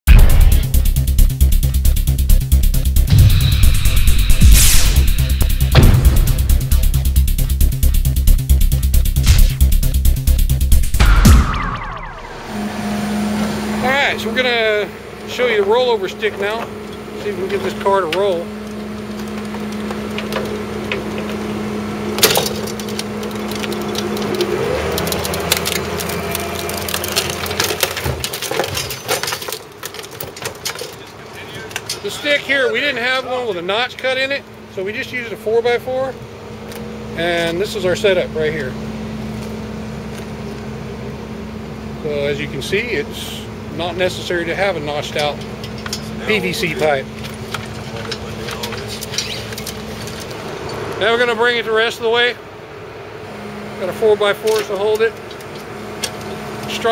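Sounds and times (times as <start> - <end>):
music: 0.1 - 12.2
truck engine idling: 0.1 - 56.9
man talking: 13.8 - 18.5, 31.0 - 36.2, 37.2 - 38.8, 42.0 - 45.4, 46.2 - 47.1, 51.0 - 52.4, 53.8 - 55.2.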